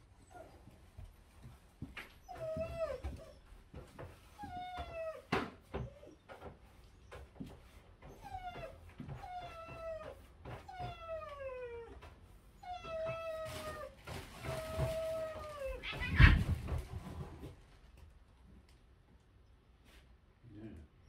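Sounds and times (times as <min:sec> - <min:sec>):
dog whining: 0:00.2 - 0:00.7, 0:02.2 - 0:06.4, 0:08.0 - 0:16.5.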